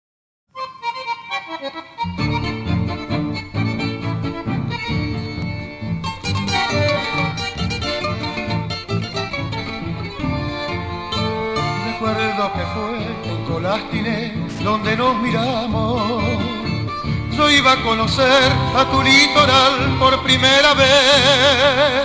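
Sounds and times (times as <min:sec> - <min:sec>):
bandoneon melody: 0:00.6 - 0:22.0
guitar accompaniment: 0:00.6 - 0:22.0
pulsing bass rhythm: 0:02.2 - 0:22.0.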